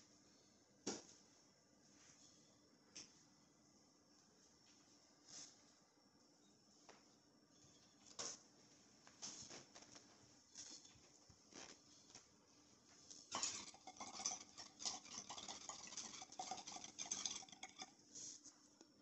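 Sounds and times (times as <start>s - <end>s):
water bubbling in a bong: 13.4s - 17.9s.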